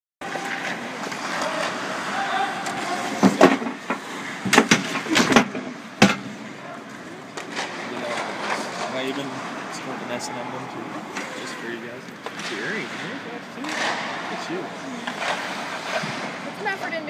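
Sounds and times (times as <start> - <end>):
skate blades scraping ice: 0.2 - 5.8, 14.8 - 17.0
sticks and puck clacking: 0.2 - 10.0, 10.8 - 17.0.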